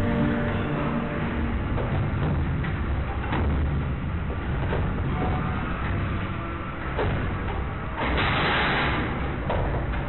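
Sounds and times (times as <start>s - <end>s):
machinery low rumble: 0.0s - 10.0s.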